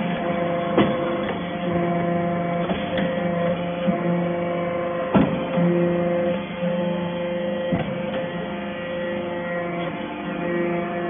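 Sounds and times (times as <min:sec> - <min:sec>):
hydraulic press humming: 0:00.0 - 0:11.0.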